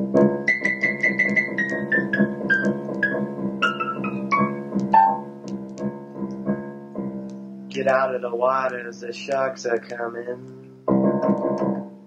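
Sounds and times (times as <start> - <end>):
piano-like keyboard melody: 0.0 - 12.0.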